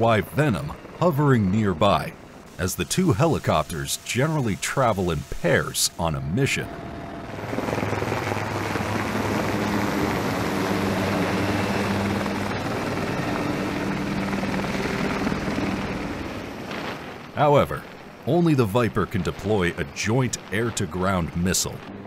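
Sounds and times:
helicopter rotor and turbine noise: 0.0s - 22.0s.

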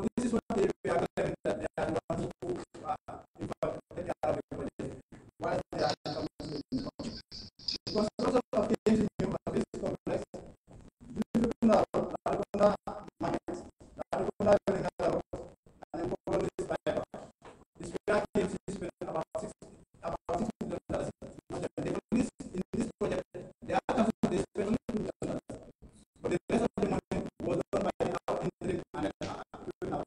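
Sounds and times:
man speaking into microphone: 0.0s - 30.0s.

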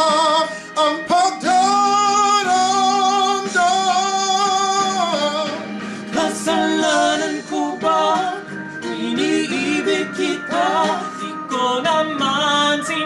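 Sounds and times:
guitar accompaniment: 0.0s - 13.0s
man singing a pop ballad: 0.0s - 13.0s.

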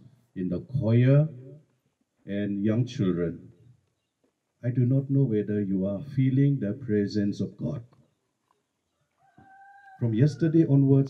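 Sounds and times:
rooster crowing: 9.0s - 10.7s.

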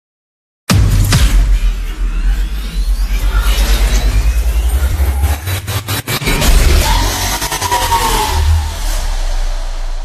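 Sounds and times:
fast-pulsing bass: 0.7s - 10.0s.

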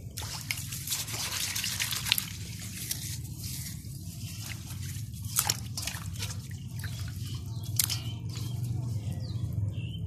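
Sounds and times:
water splashing in a metal bowl: 0.0s - 9.2s.

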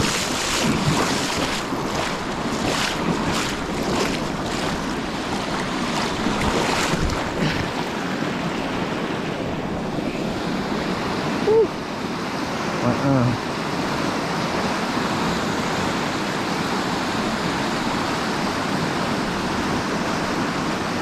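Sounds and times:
water rushing over weir: 0.0s - 21.0s.

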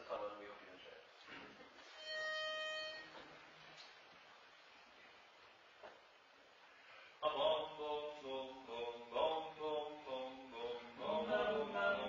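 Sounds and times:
pitch pipe note: 2.0s - 3.2s.

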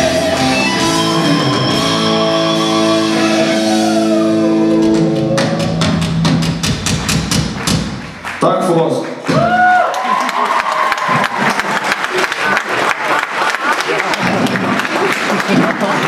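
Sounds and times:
rock chord ringing through amplifiers: 0.0s - 6.2s
audience clapping and cheering: 3.2s - 16.0s.

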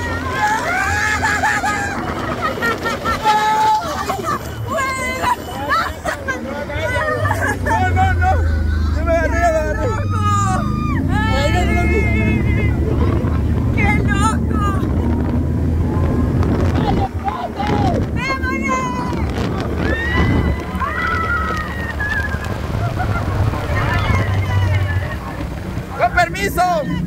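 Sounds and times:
people laughing and shrieking: 0.0s - 15.2s, 15.8s - 27.0s
small motorcycle engine rumble: 0.0s - 27.0s
wind noise: 9.5s - 26.4s.

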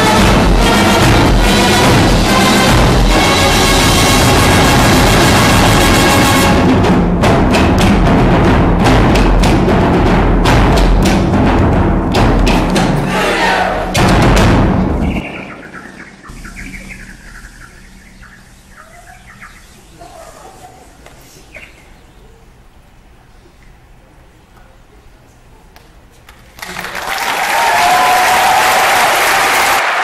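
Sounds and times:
concert band playing: 0.0s - 16.6s
heavy percussion hits: 0.0s - 18.6s.

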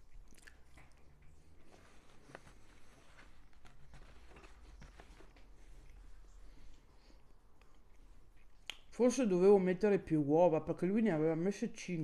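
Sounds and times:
faint chewing: 0.0s - 8.9s
lip smack: 8.5s - 8.9s.

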